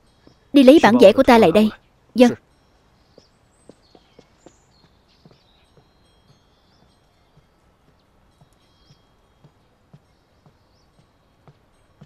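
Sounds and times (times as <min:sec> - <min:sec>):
faint bird chirps: 0:00.0 - 0:12.0
soft footsteps: 0:03.2 - 0:12.0.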